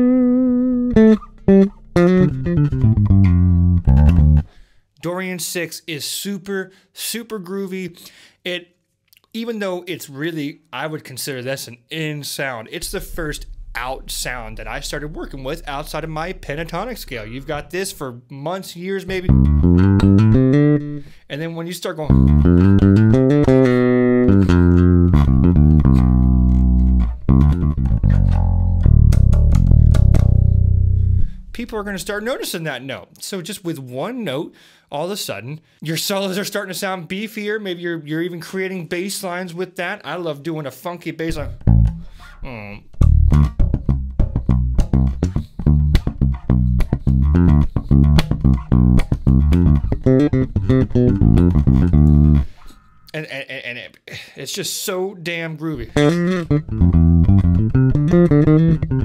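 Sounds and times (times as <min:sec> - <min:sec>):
bass guitar playing notes: 0:00.0 - 0:04.8, 0:12.8 - 0:18.0, 0:19.1 - 0:21.3, 0:22.0 - 0:32.3, 0:41.3 - 0:53.0, 0:55.8 - 0:59.0.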